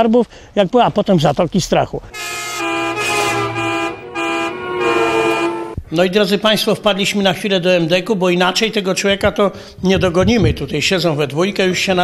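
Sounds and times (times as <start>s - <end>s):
vehicle horn blasts: 2.1s - 5.8s.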